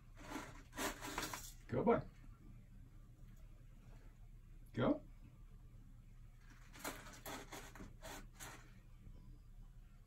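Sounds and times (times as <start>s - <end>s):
kitten paws scratching litter: 6.4s - 8.8s.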